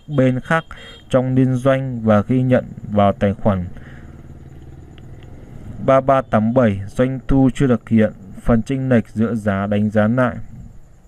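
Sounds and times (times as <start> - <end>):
man speaking: 0.0 - 3.8, 5.8 - 10.7
low steady hum: 0.0 - 11.0
faint clicks: 4.0 - 5.4.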